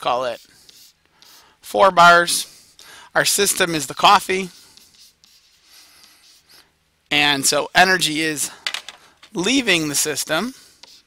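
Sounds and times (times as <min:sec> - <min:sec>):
stylus scratching while writing: 0:00.0 - 0:01.5, 0:03.6 - 0:06.6, 0:10.5 - 0:11.0.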